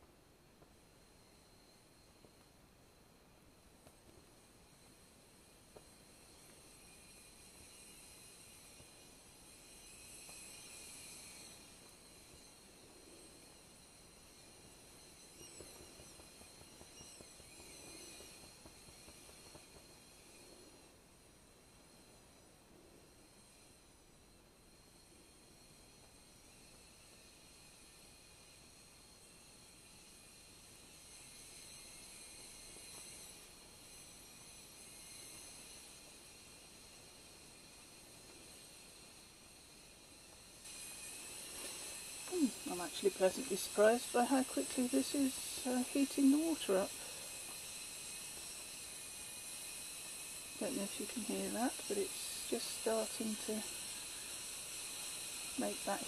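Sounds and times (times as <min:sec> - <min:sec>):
faint kettle hiss: 0:00.0 - 0:56.0.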